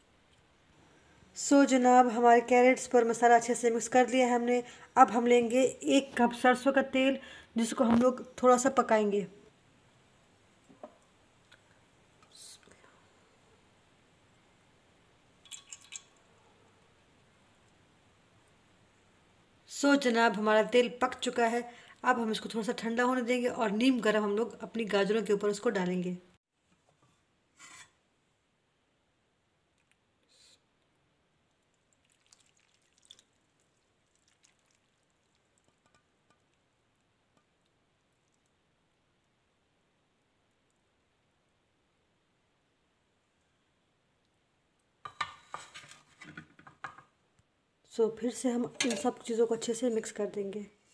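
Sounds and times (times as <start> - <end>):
soft hiss: 9.4 - 19.7, 29.4 - 45.7
faint ticks and crackles: 31.5 - 38.6.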